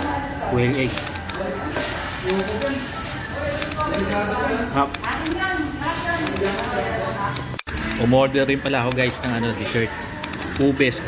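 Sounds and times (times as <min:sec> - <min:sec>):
people talking in restaurant: 0:00.0 - 0:11.0.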